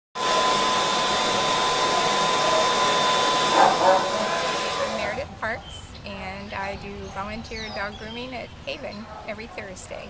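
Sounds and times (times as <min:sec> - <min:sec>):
blow dryer running: 0:00.2 - 0:05.3.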